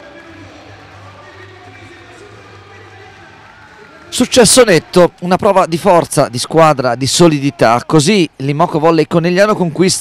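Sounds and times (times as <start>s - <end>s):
public address music and voices: 0.0s - 10.0s.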